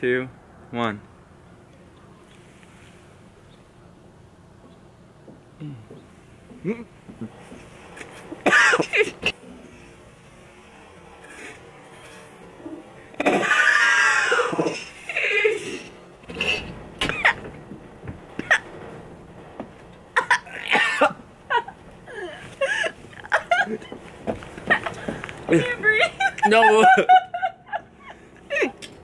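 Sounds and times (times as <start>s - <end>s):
person gagging: 6.6s - 7.4s
people coughing: 8.4s - 9.5s, 13.2s - 17.5s, 20.2s - 23.9s.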